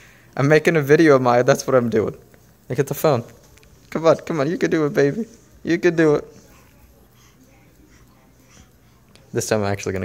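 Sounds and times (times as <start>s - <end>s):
faint breathing: 0.0s - 0.4s, 6.2s - 9.3s.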